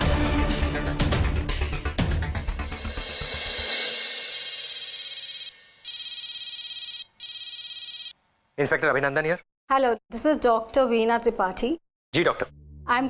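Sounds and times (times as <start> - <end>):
dramatic music with drums: 0.0 - 4.7
mobile phone ringtone: 4.8 - 8.2.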